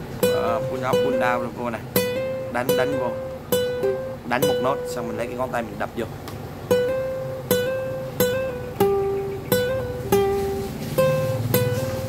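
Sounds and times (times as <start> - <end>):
classical guitar melody: 0.0 - 12.0.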